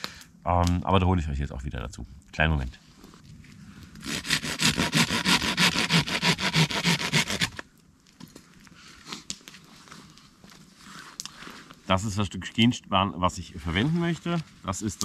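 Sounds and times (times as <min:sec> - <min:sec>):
blade scraping wood: 0:04.0 - 0:07.6.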